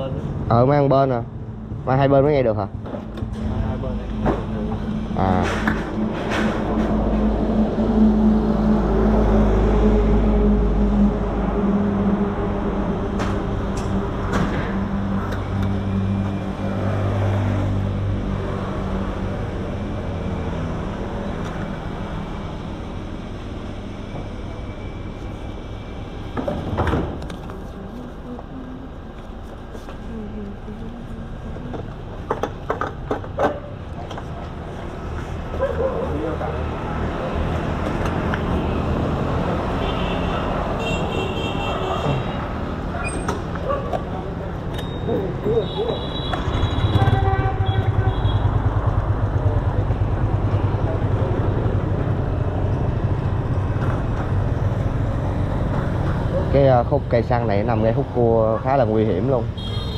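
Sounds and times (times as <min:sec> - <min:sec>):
sharp clicks and knocks: 0:31.7 - 0:34.3
vehicle engine idling: 0:42.8 - 0:56.6.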